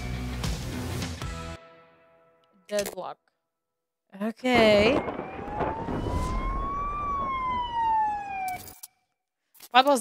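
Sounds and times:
low rumble: 0:04.6 - 0:08.2
police siren wailing: 0:04.6 - 0:09.0.

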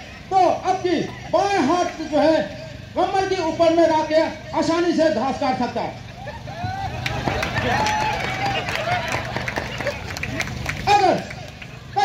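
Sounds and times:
crowd murmur: 0:06.0 - 0:12.0
man's loud voice: 0:10.8 - 0:11.4.

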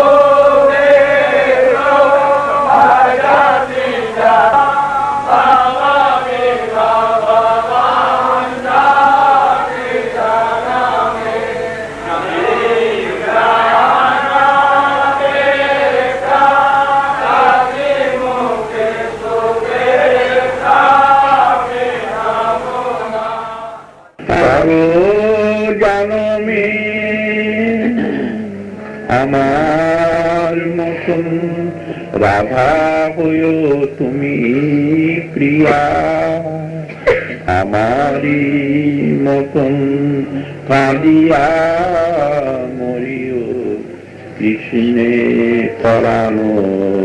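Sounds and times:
devotional chanting: 0:00.0 - 0:47.0.

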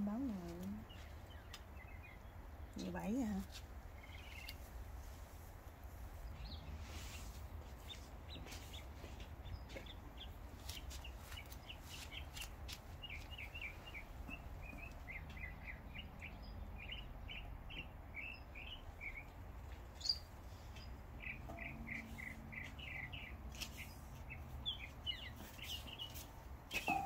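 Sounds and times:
small birds chirping: 0:00.0 - 0:05.2, 0:05.9 - 0:27.0.

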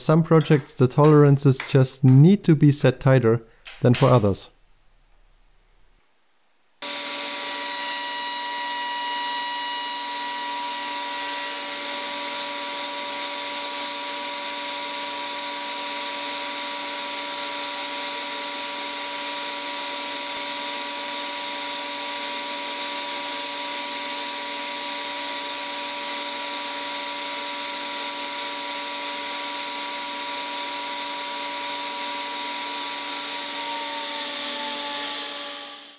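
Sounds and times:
workshop machine running: 0:06.8 - 0:35.9.

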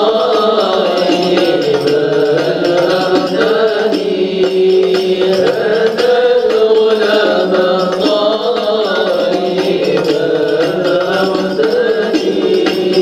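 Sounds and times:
devotional chanted singing: 0:00.0 - 0:13.0.

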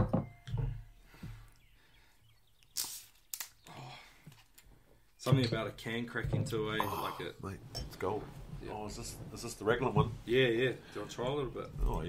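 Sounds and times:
beer can cracked open: 0:02.7 - 0:03.7.

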